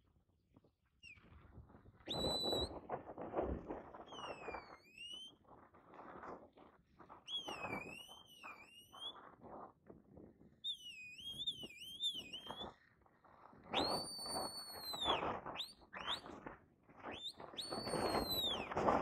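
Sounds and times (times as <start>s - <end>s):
long high held whistle: 2.1s - 2.7s, 4.1s - 5.4s, 7.3s - 9.2s, 10.6s - 12.8s, 13.8s - 16.3s, 17.1s - 18.8s
whistled calls: 2.1s - 2.8s, 4.1s - 5.4s, 7.3s - 9.2s, 10.6s - 12.8s, 13.7s - 16.4s, 17.1s - 18.8s.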